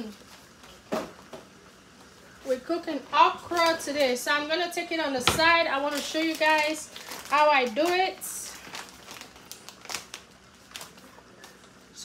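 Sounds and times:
plastic bag crinkling: 3.4s - 4.0s, 5.4s - 12.0s.

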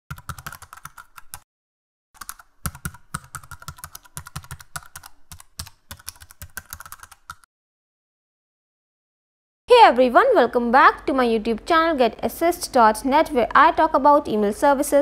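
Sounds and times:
keyboard typing clicks: 0.1s - 1.4s, 2.2s - 7.5s.

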